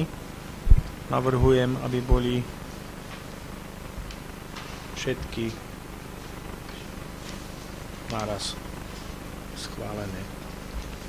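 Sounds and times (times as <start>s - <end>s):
low amplification hum: 0.0s - 11.0s.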